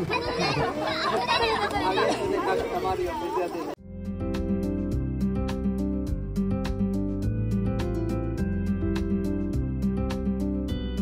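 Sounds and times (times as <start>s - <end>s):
children and adults chattering: 0.0s - 3.8s.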